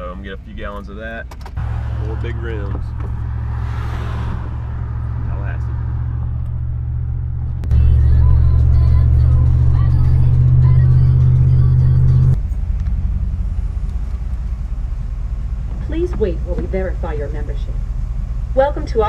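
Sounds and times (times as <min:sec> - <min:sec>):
truck engine and road noise: 0:00.0 - 0:19.0.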